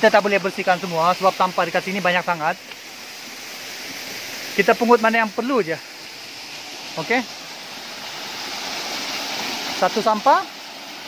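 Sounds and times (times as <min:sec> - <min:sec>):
waterfall rushing into pool: 0:00.0 - 0:11.0.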